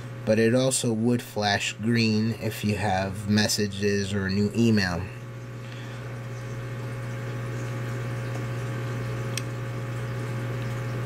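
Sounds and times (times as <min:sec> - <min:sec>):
steady low hum: 0:00.0 - 0:11.0
small click: 0:09.3 - 0:09.6.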